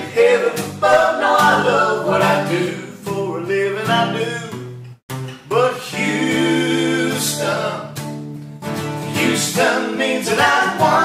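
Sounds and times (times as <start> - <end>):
acoustic guitar strumming: 0.0 - 11.0
voices singing country song: 0.0 - 11.0.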